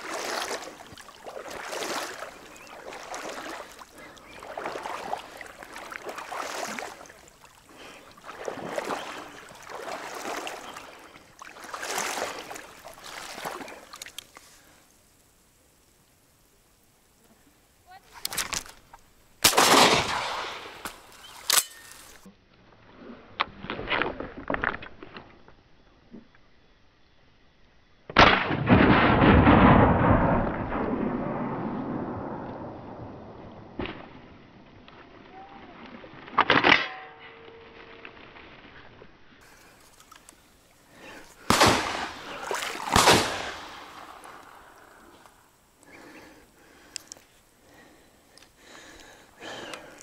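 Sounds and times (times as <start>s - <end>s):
shotgun shots: 19.4s - 20.8s, 28.2s - 32.4s, 41.4s - 44.4s
shotgun shots with echo: 19.4s - 20.8s, 41.5s - 44.2s.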